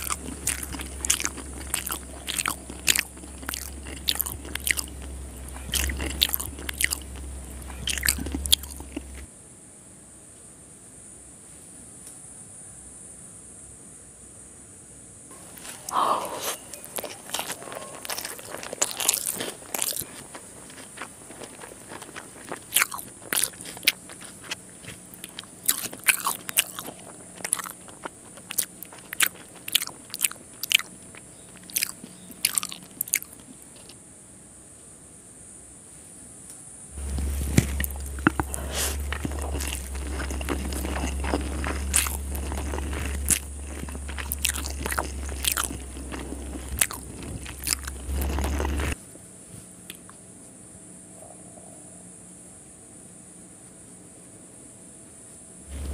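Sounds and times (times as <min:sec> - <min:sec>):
crunchy chewing: 0:00.0 - 0:09.3, 0:15.3 - 0:34.0, 0:36.9 - 0:49.0, 0:49.7 - 0:50.2, 0:55.7 - 0:55.9
low steady hum: 0:00.0 - 0:10.2, 0:15.3 - 0:35.4, 0:36.8 - 0:55.9.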